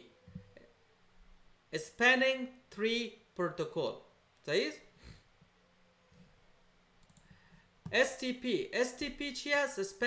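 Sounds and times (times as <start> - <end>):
man speaking: 1.7 - 4.9, 7.9 - 10.0
computer mouse clicks: 7.0 - 8.0.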